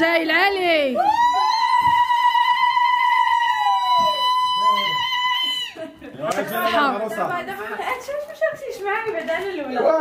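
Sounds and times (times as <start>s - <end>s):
women ululating: 1.0s - 5.9s.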